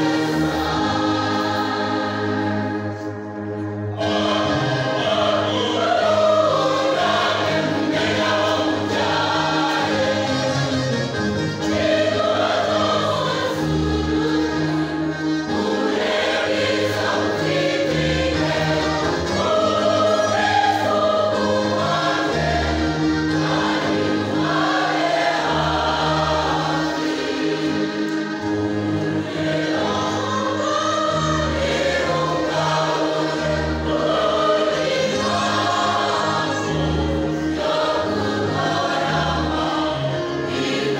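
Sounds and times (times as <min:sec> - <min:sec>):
large choir singing: 0:00.0 - 0:40.9.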